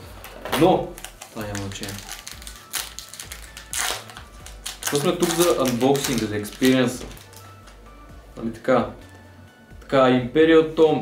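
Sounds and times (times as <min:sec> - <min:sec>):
foil pack ripping: 0:00.5 - 0:07.4
foil pack crinkling: 0:00.6 - 0:07.5.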